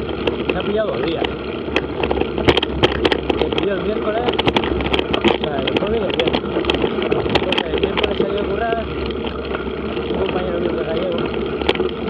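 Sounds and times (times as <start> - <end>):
bike rattling clicks: 0.0 - 12.0
bike tyres rolling on dirt: 0.0 - 12.0.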